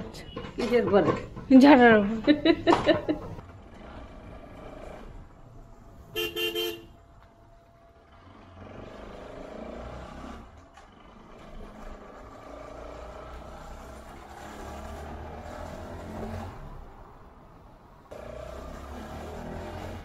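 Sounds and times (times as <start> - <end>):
engine rumble: 0.0 - 20.0
road noise: 0.0 - 20.0
vehicle horn toot: 6.1 - 7.0.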